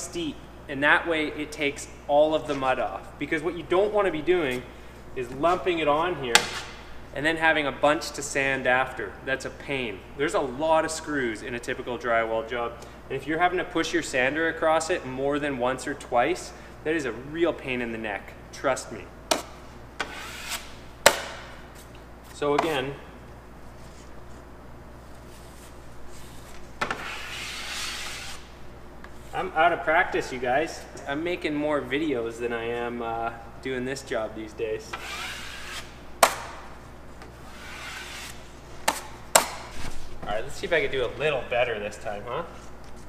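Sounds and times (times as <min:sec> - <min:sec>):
drywall knife scraping compound: 0:26.9 - 0:28.4, 0:34.9 - 0:35.9, 0:37.5 - 0:39.1.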